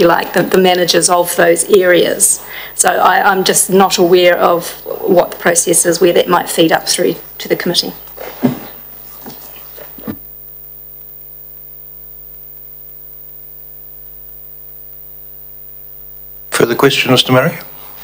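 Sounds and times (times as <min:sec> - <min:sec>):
electrical mains hum: 0:00.0 - 0:18.0.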